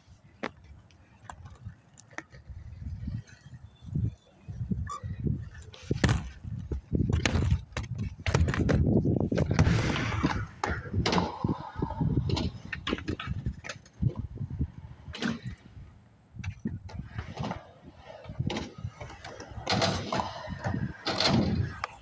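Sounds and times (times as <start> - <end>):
skateboard wheels rolling on concrete: 0.0 - 22.0
skateboards clacking on ground: 0.2 - 3.5, 5.4 - 14.3, 16.4 - 22.0.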